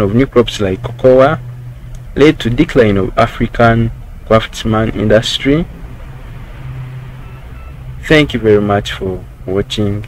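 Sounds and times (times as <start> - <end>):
steady low hum: 0.0 - 10.0
faint hiss: 1.4 - 10.0.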